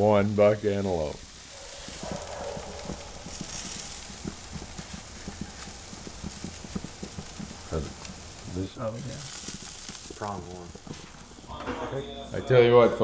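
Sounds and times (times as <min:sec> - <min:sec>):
steaks sizzling on a grill: 0:00.0 - 0:12.7.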